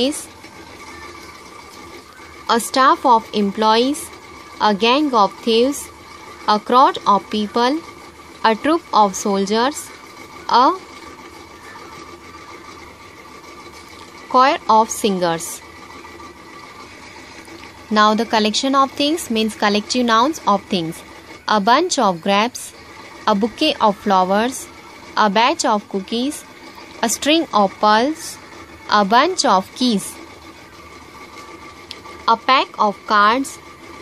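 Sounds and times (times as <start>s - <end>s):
faint whining tones: 0.0s - 34.0s
low room hum: 0.0s - 34.0s.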